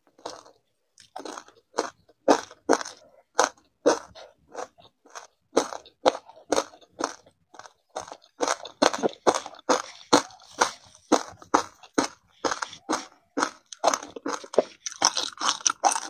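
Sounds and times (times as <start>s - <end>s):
ice crunching and chewing: 0.0s - 16.0s.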